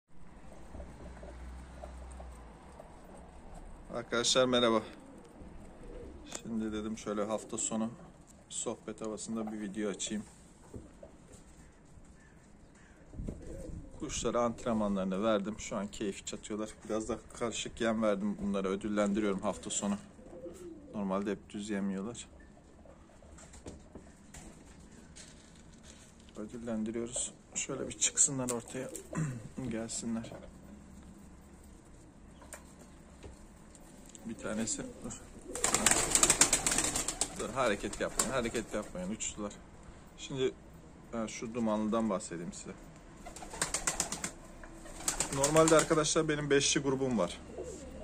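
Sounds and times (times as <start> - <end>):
pigeons feeding on tiled floor: 0.2 - 8.4, 22.4 - 46.1, 47.1 - 48.0
pigeons cooing: 0.4 - 8.2, 10.8 - 14.4, 19.4 - 21.1, 34.2 - 39.1, 47.2 - 48.0.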